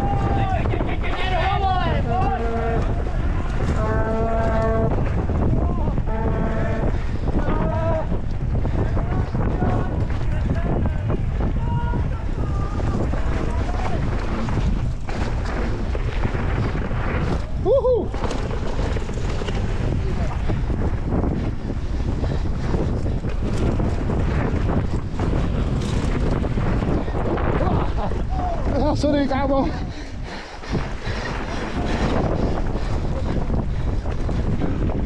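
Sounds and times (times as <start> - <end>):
wind buffeting microphone: 0.0 - 35.0.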